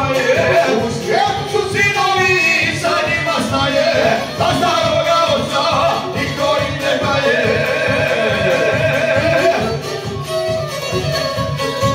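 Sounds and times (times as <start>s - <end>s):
man singing into a microphone: 0.0s - 9.9s
plucked strings: 0.0s - 11.9s
steady beat: 0.0s - 11.9s
violin melody: 0.0s - 11.9s.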